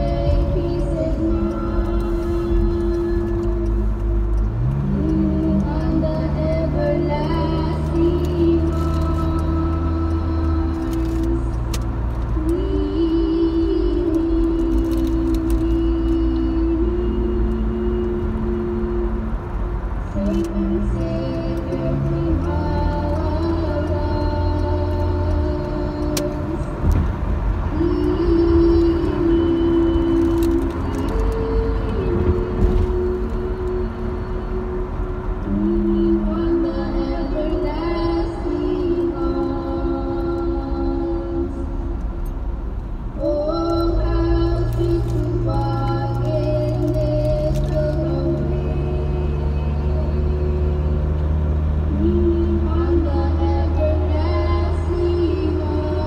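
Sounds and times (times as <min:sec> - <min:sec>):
car road noise: 0:00.0 - 0:56.0
slow hymn music: 0:00.0 - 0:56.0.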